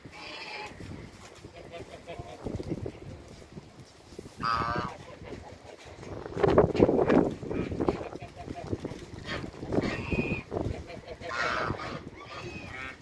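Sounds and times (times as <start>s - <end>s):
waterfowl honking calls: 4.4s - 5.0s, 9.3s - 13.0s.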